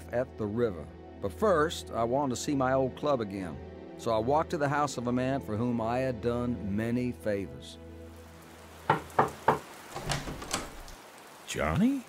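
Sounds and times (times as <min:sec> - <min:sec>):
background music: 0:00.0 - 0:10.9
knocks on a door: 0:08.9 - 0:10.7.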